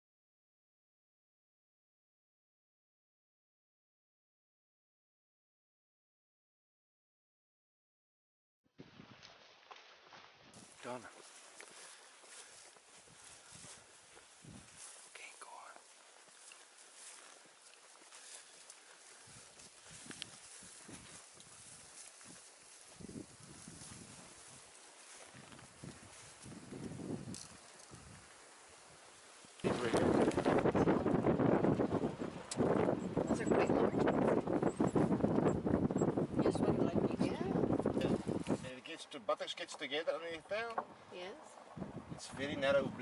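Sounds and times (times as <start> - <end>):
footsteps through dry grass: 8.8 - 32.0
wind buffeting microphone: 13.0 - 14.9, 19.0 - 24.7, 25.3 - 28.3, 29.0 - 38.7, 41.6 - 43.0.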